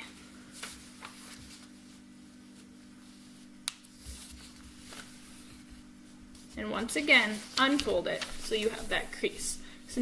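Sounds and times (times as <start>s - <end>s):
paper folding and rustling: 0.1s - 9.5s.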